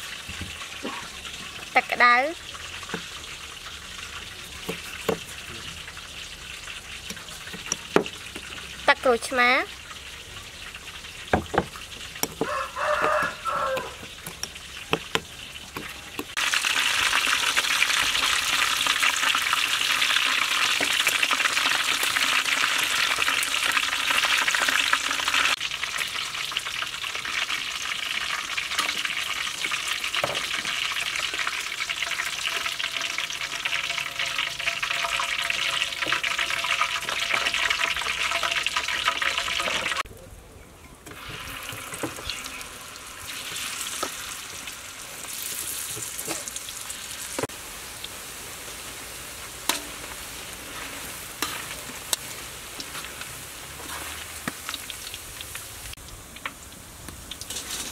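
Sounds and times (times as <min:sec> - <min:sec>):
oil sizzling and bubbling: 0:00.0 - 0:40.1, 0:41.0 - 0:57.9.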